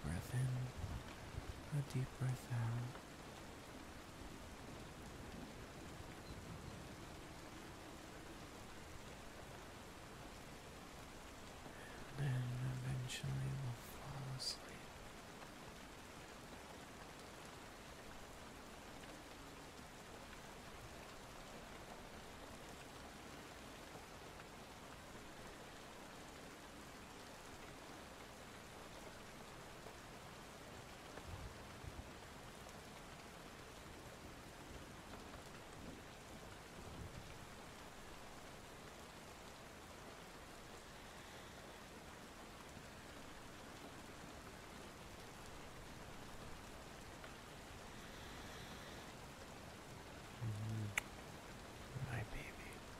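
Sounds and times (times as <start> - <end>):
steady rain falling: 0.0 - 52.9.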